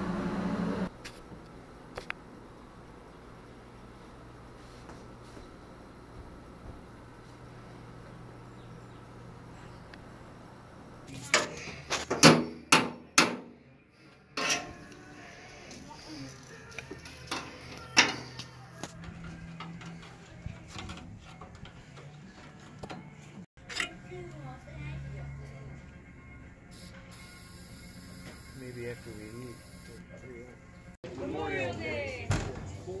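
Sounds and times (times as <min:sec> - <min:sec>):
sharp metallic knocks and clanks: 0:12.1 - 0:13.5.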